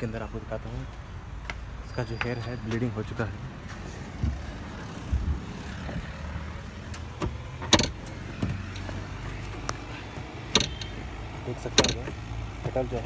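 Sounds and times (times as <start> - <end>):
clicks and knocks in car cabin: 7.0 - 8.8, 11.7 - 12.8.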